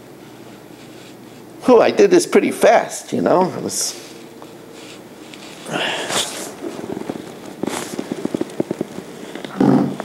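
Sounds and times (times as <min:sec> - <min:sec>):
man humming low: 0:05.6 - 0:07.0, 0:09.4 - 0:10.0.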